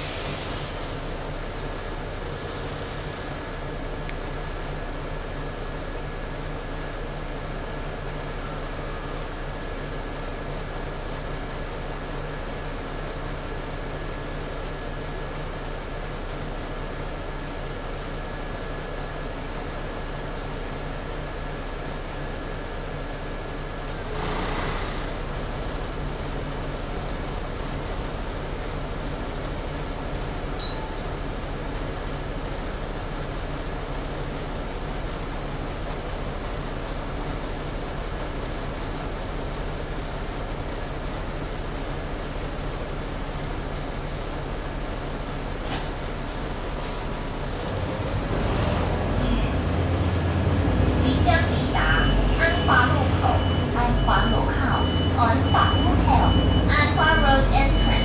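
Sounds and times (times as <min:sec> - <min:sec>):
bus engine and air conditioning hum: 0:00.0 - 0:58.0.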